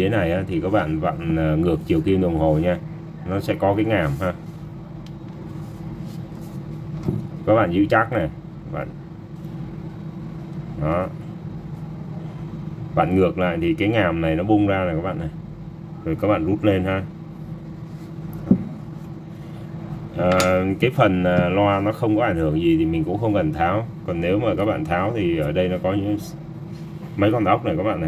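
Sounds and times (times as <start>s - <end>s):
steady low hum: 0.0s - 28.0s
plastic speaker knocking on desk: 18.5s - 18.8s.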